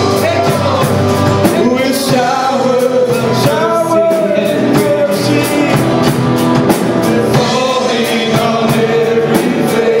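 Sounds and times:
acoustic and electric guitars: 0.0s - 10.0s
drum kit steady beat: 0.0s - 10.0s
voices singing held notes: 0.0s - 10.0s.

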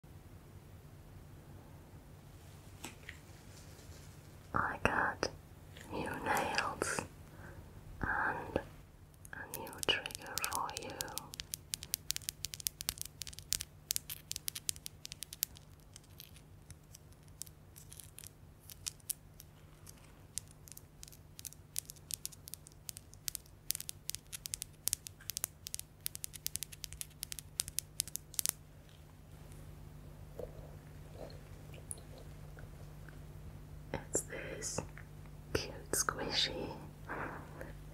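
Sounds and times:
soft whispering: 4.5s - 11.5s, 33.9s - 37.9s.

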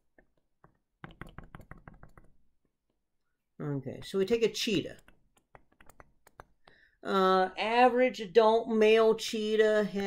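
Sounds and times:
stylus tapping on tablet screen: 0.0s - 3.0s, 4.9s - 6.9s.

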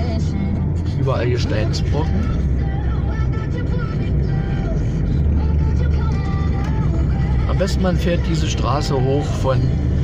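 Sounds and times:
car engine and tyres rumbling: 0.0s - 10.0s.

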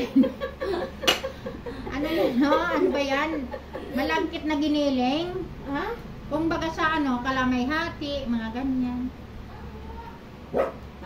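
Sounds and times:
dog barking: 10.5s - 10.8s.

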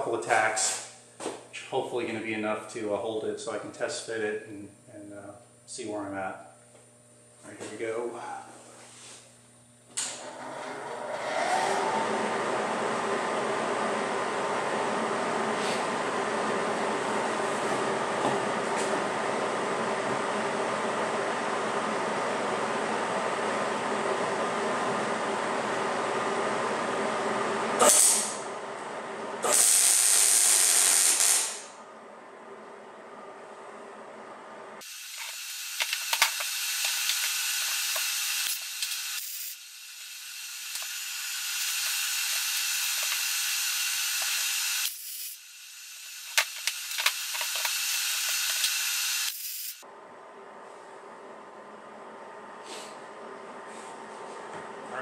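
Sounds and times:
welding arc hissing and crackling: 27.8s - 28.5s, 29.4s - 31.8s, 34.8s - 49.8s.

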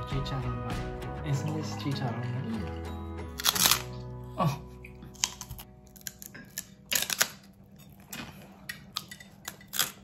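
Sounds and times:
crispy skin crunching: 3.2s - 4.2s, 4.9s - 10.0s.

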